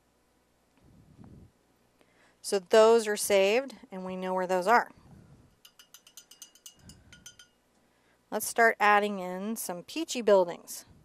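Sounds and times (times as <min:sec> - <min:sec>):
paintbrush clinking against glass jar: 0:05.5 - 0:07.6.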